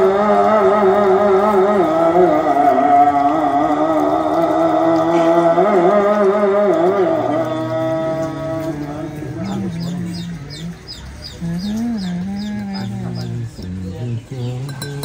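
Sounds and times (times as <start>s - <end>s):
lower voice singing: 0.0s - 15.0s
man singing devotional chant: 0.0s - 15.0s.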